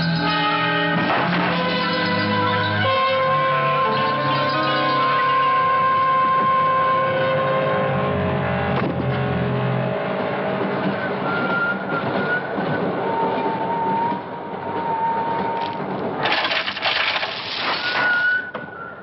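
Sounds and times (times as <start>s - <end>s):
train rumbling: 0.0s - 19.0s.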